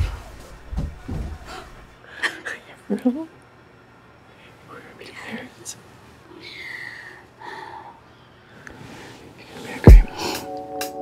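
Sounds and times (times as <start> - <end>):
quiet whispering: 4.3 - 8.1.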